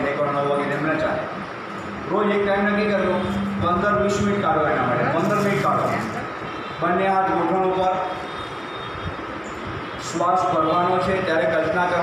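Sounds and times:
fan hiss: 0:00.0 - 0:06.0.

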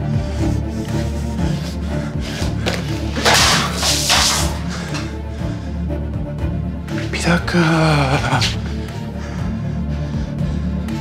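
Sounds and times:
tense background music: 0:00.0 - 0:11.0.

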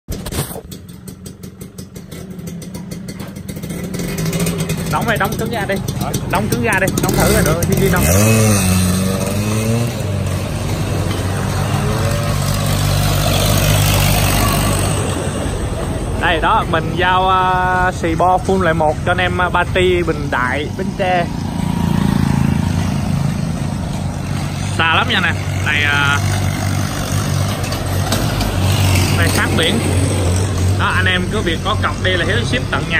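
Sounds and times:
engine idling: 0:00.1 - 0:08.5
two-stroke motorcycle engine: 0:00.1 - 0:32.9.

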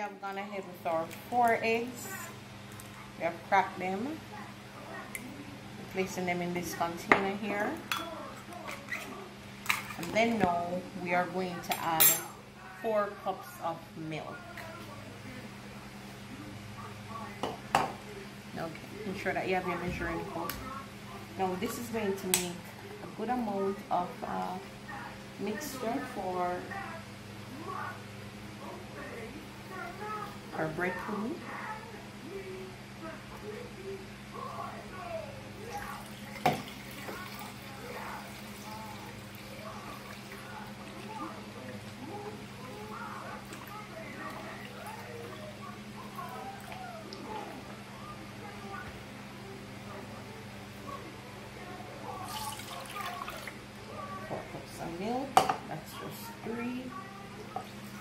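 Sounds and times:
voices murmuring: 0:01.7 - 0:58.0
milk pouring into plastic cup: 0:35.7 - 0:47.3, 0:52.2 - 0:53.6.

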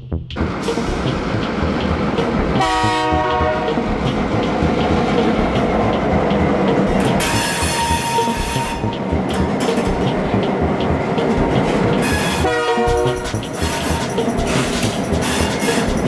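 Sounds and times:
diesel locomotive engines running: 0:00.0 - 0:16.0
wheels clattering over rail joints: 0:00.4 - 0:16.0
locomotive horn blast: 0:02.5 - 0:03.9, 0:07.2 - 0:09.1, 0:12.0 - 0:15.9
high-pitched wheel squeal: 0:07.2 - 0:09.1, 0:12.0 - 0:16.0.

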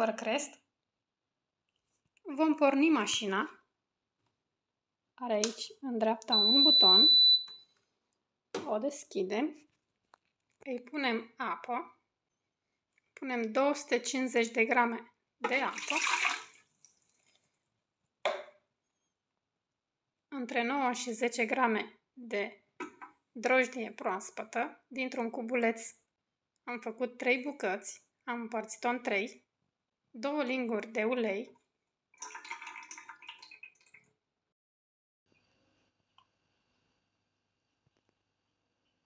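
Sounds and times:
oil pouring: 0:15.7 - 0:17.6, 0:32.2 - 0:34.0.

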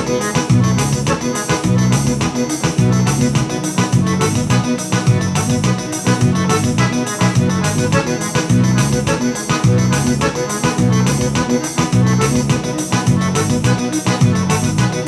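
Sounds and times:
piano accordion playing a tune: 0:00.0 - 0:15.0.

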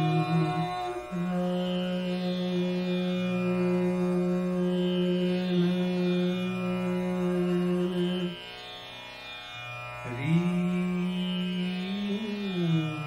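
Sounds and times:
man singing long held notes: 0:00.0 - 0:08.4, 0:10.0 - 0:13.0
tanpura drone: 0:00.0 - 0:13.0.

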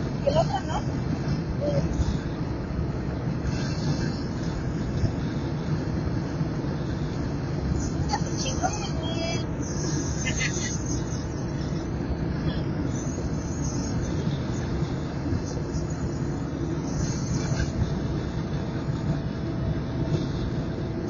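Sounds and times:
car cabin road and engine rumble: 0:00.0 - 0:21.0.

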